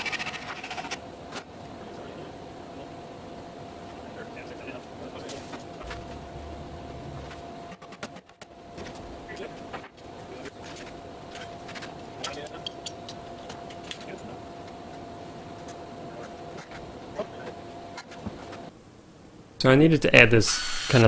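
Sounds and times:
steady hum: 0.0 - 21.0.

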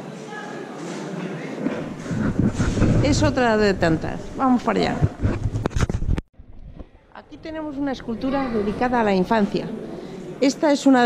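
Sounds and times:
wind buffeting microphone: 1.8 - 9.2.

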